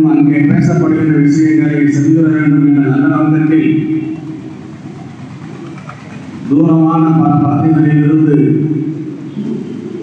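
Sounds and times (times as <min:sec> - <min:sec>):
man speaking over loudspeaker: 0:00.0 - 0:04.4, 0:06.4 - 0:09.1.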